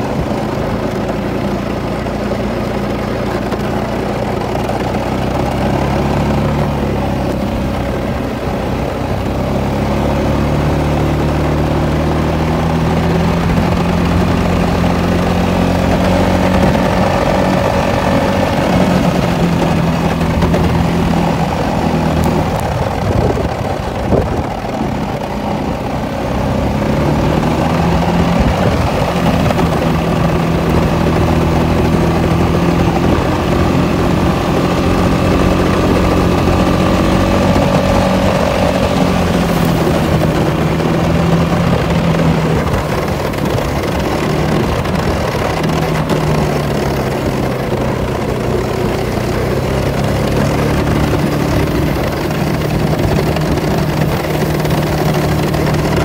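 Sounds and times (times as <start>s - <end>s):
atv engine running under load: 0.0s - 56.0s
plow blade pushing snow: 0.0s - 56.0s.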